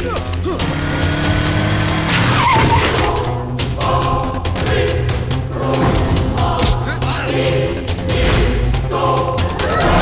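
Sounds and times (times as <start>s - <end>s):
motorcycle engine running: 0.2s - 2.1s
tyre skid squeal: 2.1s - 3.0s.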